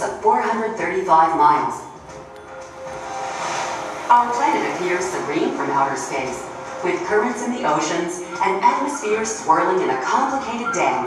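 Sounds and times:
whooshing soundtrack swell: 0:01.5 - 0:10.1.

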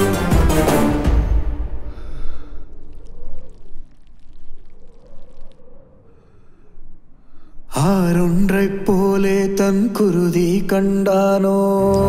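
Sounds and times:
liquid trickling over gravel: 0:02.3 - 0:05.6.

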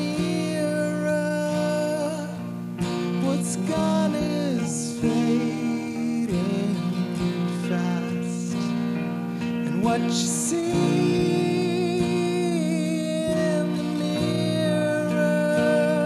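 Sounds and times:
guitar accompaniment: 0:00.0 - 0:16.0
man singing: 0:00.0 - 0:16.0.

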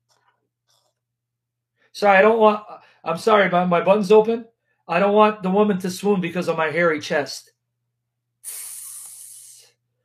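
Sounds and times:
hiss from handheld device: 0:08.4 - 0:09.7.

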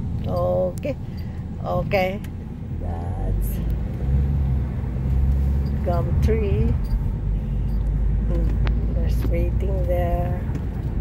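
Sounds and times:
car engine and tyre rumble: 0:00.0 - 0:11.0.

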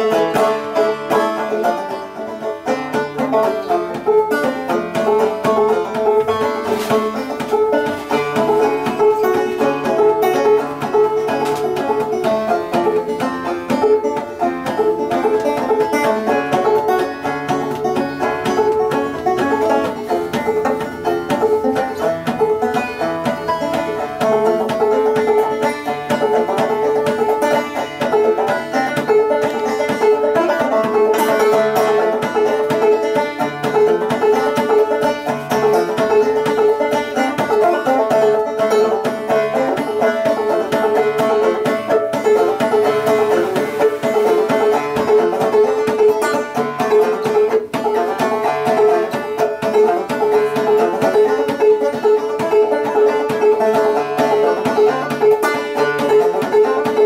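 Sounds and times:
solo banjo playing: 0:00.0 - 0:57.0.

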